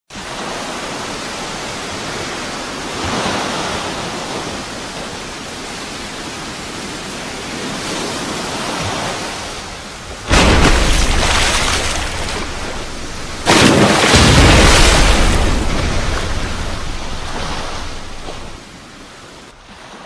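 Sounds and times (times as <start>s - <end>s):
steady rushing hiss: 12.1s - 13.5s.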